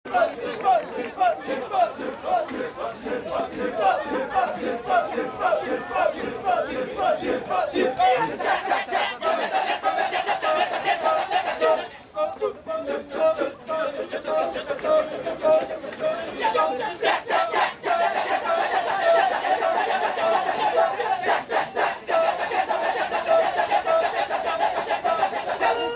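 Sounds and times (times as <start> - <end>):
men chanting rhythmic syllables: 0.1 - 25.9.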